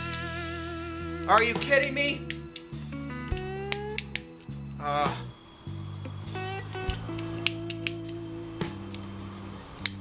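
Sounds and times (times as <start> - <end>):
guitar music: 0.0 - 10.0
lighter clicking: 1.4 - 4.4, 6.6 - 9.2, 9.8 - 10.0.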